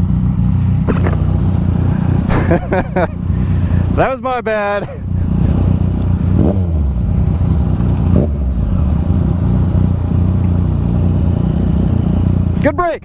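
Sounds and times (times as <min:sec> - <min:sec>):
motorcycles idling: 0:00.0 - 0:13.0.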